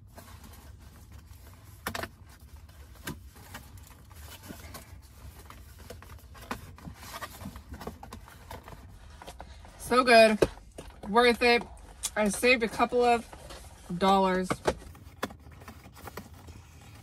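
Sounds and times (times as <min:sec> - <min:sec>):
cardboard box rustling and folding: 0:00.0 - 0:17.0.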